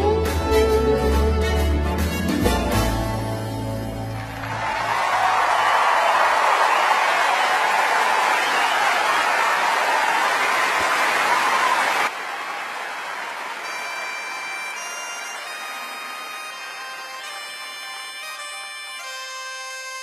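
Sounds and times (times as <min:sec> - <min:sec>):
crowd noise: 0:00.0 - 0:19.1
audience applauding: 0:03.7 - 0:17.6.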